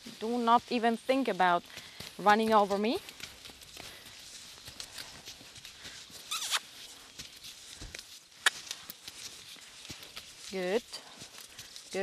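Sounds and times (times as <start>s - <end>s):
footsteps walking on sand: 0.0s - 12.0s
horse hoofbeats on sand: 0.0s - 12.0s.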